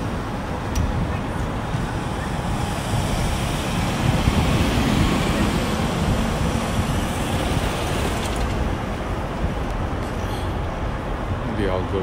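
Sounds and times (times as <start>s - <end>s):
wind on microphone: 0.0s - 11.5s.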